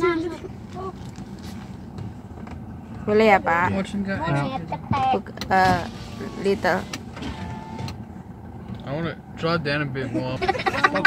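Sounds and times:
car interior hum: 0.0 - 11.0
electric window motor whine: 5.8 - 8.0.

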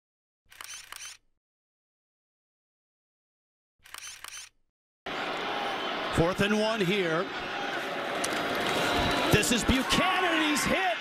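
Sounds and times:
camera shutter clicks: 0.5 - 1.2, 3.8 - 4.6
stadium crowd noise: 5.1 - 11.0.

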